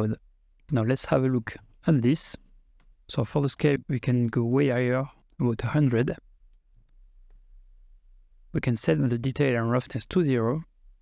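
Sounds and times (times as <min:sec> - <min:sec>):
person speaking: 0:00.0 - 0:06.3, 0:08.5 - 0:10.8.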